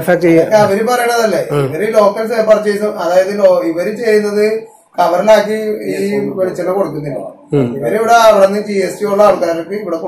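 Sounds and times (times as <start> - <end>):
person talking: 0.0 - 2.0, 5.0 - 9.7.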